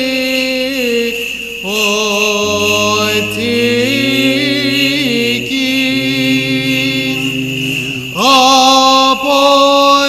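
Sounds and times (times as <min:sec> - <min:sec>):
voices chanting long notes: 0:02.2 - 0:09.4
low sustained drone note: 0:02.3 - 0:09.2
louder voice on rising note: 0:02.4 - 0:08.6.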